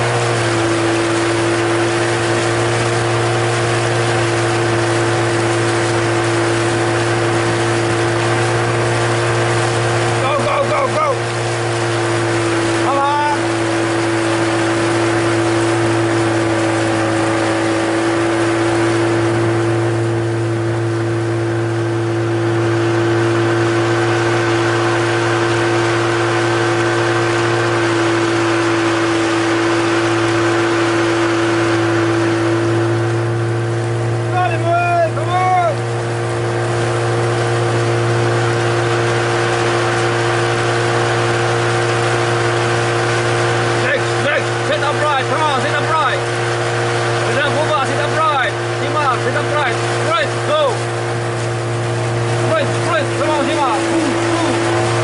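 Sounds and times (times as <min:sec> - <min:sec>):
motorboat engine running: 0:00.0 - 0:55.0.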